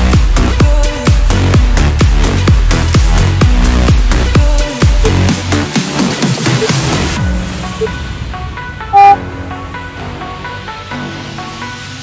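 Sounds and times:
electronic dance music: 8.9s - 9.2s
short loud electronic beep: 8.9s - 9.2s.

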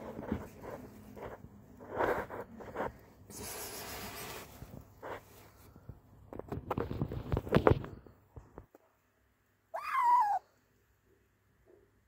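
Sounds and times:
kitten meowing: 9.7s - 10.4s.

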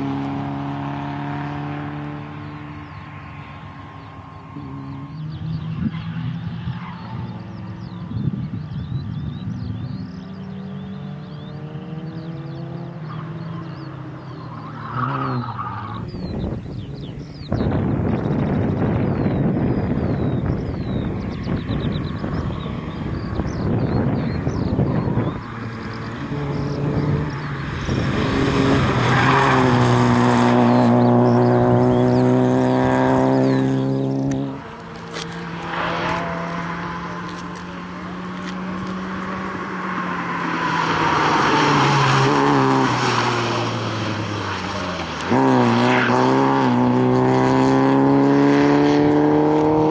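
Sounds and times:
car engine revving hard: 24.7s - 49.9s.

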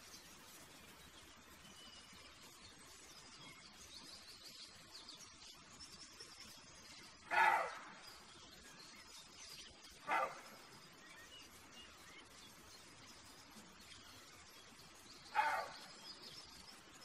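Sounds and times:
deer barking: 7.3s - 8.0s, 10.0s - 10.5s, 15.3s - 15.9s.

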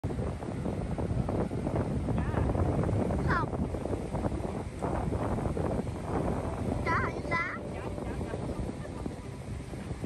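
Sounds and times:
sea surf: 0.0s - 10.0s
wind buffeting microphone: 0.0s - 10.0s.

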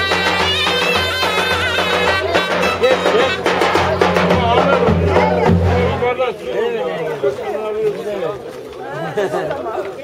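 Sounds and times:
men talking over one another: 0.7s - 10.0s.

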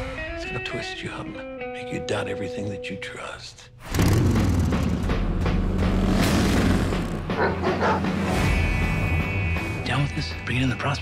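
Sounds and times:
trailer music: 3.8s - 11.0s.

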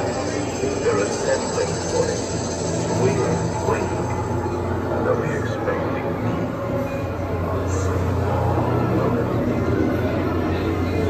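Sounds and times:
faint indistinct voices: 0.0s - 11.0s.

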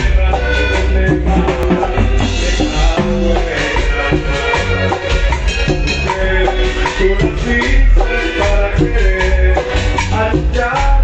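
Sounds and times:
deep bass line: 0.0s - 11.0s
drum kit beat: 0.0s - 11.0s
electric guitars: 0.0s - 11.0s
live band playing: 0.0s - 11.0s.

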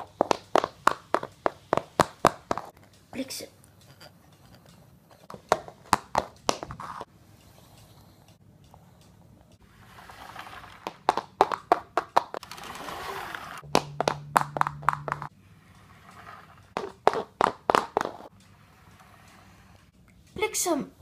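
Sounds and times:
steady low hum: 13.6s - 21.0s.

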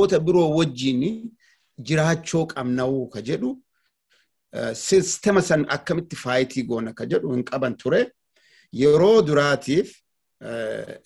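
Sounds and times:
man talking: 0.0s - 3.7s, 4.5s - 11.0s.

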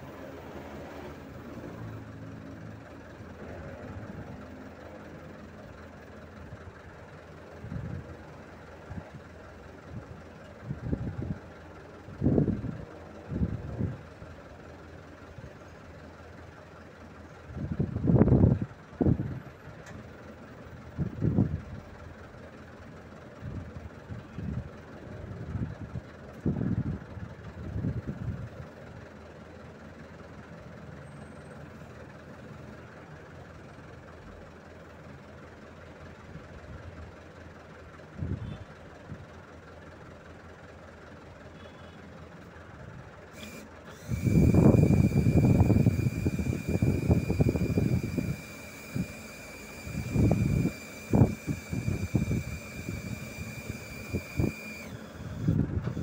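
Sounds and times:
truck engine running: 0.0s - 56.0s.

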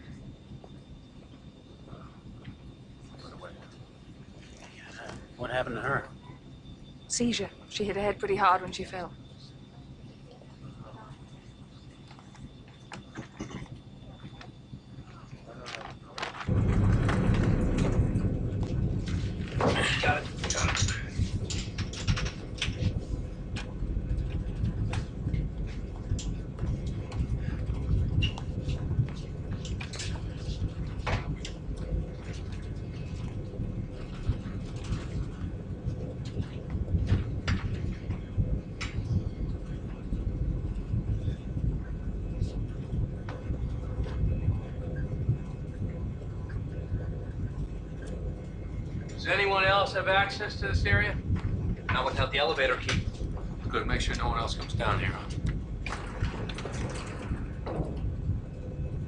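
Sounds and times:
airliner rumble in flight: 0.0s - 59.0s.

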